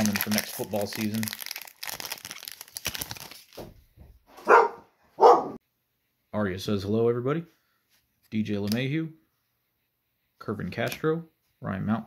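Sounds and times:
foil wrapper crinkling: 0.0 - 3.7
dog barking loudly: 4.4 - 5.6.

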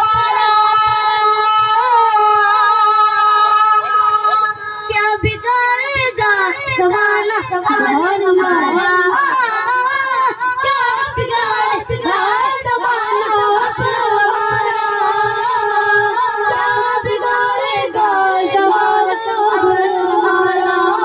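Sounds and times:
boy singing into a microphone: 0.0 - 21.0.

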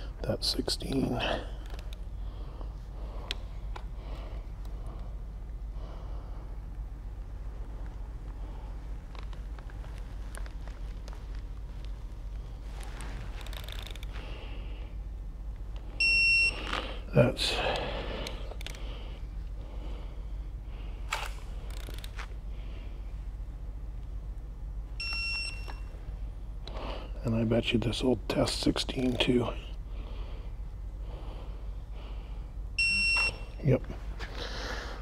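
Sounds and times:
torque wrench beep: 25.0 - 25.9, 32.8 - 33.6.

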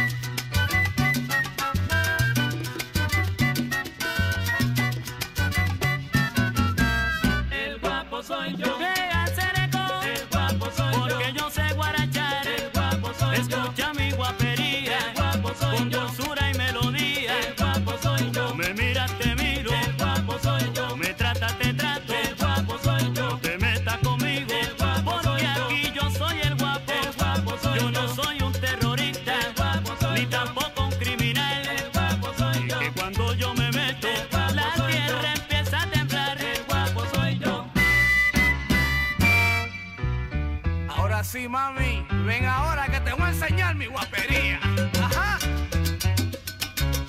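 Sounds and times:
salsa band playing instrumental: 0.0 - 41.4, 42.2 - 47.0.

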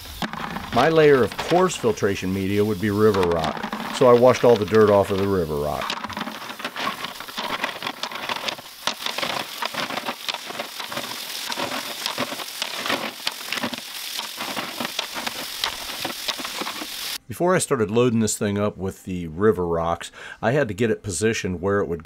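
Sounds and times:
hose spraying water: 0.0 - 17.2
rocks clicking in metal wheelbarrow: 0.0 - 17.2.

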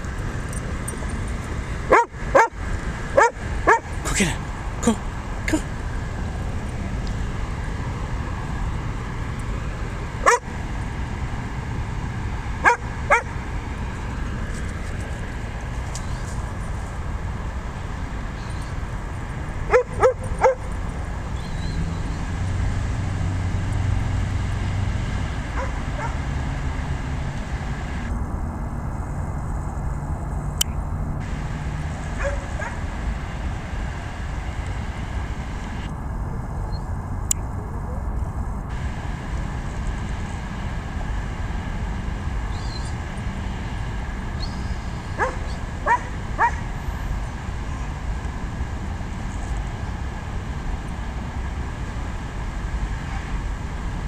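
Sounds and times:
dog barking: 1.9 - 2.6, 3.2 - 3.9, 10.2 - 10.4, 12.6 - 13.3, 19.7 - 20.7, 25.6 - 26.2, 32.2 - 32.8, 45.2 - 46.6.

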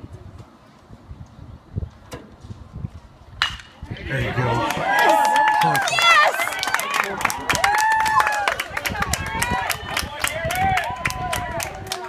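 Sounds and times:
spectators yelling and cheering: 3.8 - 12.0
people clapping: 4.0 - 12.0.

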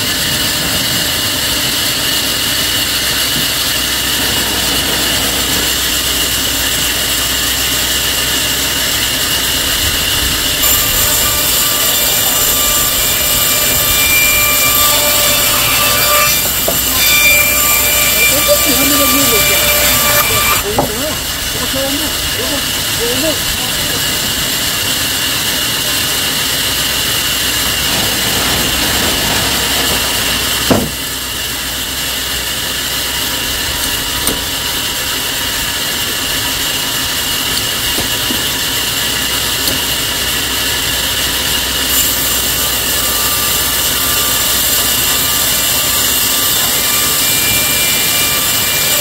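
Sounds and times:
sawmill machinery running: 0.0 - 49.0
sharp knock: 30.7 - 31.0.

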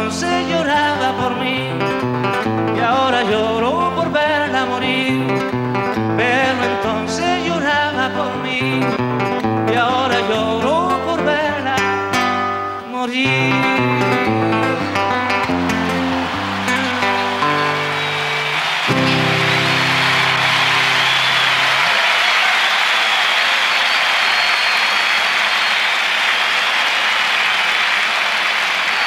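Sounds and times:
acoustic guitar playing: 0.0 - 21.9
crowd applause: 14.0 - 29.0.

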